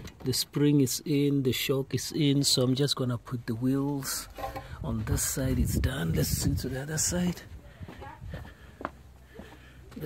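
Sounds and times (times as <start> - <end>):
quiet outdoor background: 0.0 - 10.0
footsteps on paving: 4.4 - 10.0.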